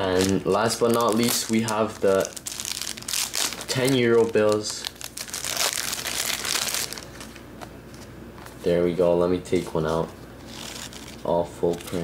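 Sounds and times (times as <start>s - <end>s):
plastic wrapping crinkling: 0.0s - 7.4s, 9.5s - 12.0s.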